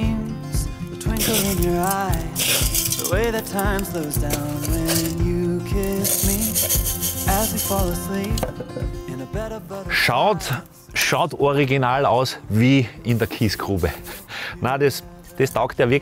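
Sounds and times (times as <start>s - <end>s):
pop song with singing: 0.0s - 16.0s
gravel trickling and clinking: 1.0s - 8.9s.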